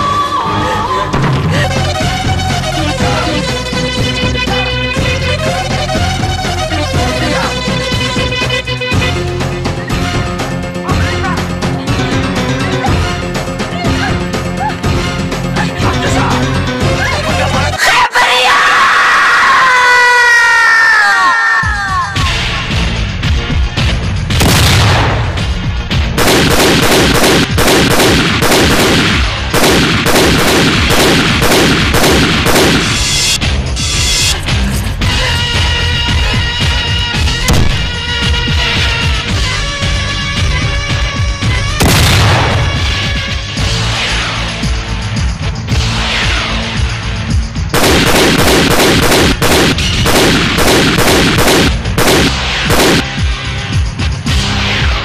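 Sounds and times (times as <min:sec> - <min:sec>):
dramatic background music: 0:21.2 - 0:55.0
rapid gunfire: 0:24.3 - 0:25.5, 0:26.2 - 0:33.4, 0:41.8 - 0:43.0, 0:47.7 - 0:53.2.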